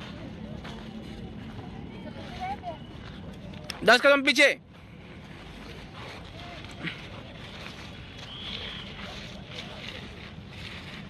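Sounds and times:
faint indistinct background sounds: 0.0 - 11.0.

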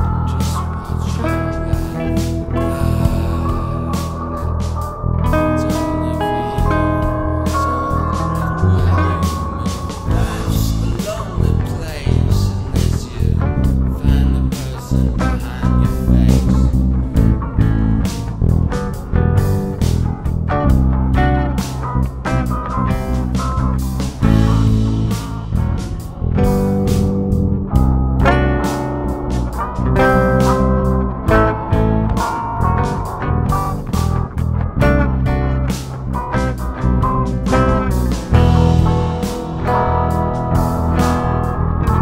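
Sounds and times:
bass guitar: 0.0 - 42.0
electric guitar playing: 0.0 - 42.0
drum beat: 6.6 - 14.7, 37.0 - 41.3.

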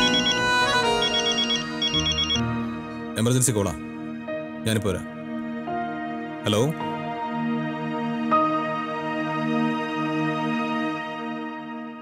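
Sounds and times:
mobile phone ringing: 0.0 - 2.6.

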